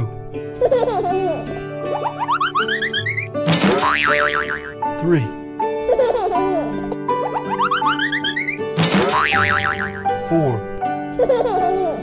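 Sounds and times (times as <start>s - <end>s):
cheerful children's music: 0.0s - 12.0s.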